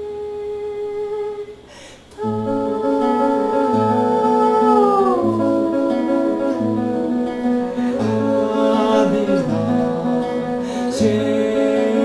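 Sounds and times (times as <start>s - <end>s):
long held sung note: 2.2s - 11.1s
plucked classical guitar: 2.2s - 12.0s.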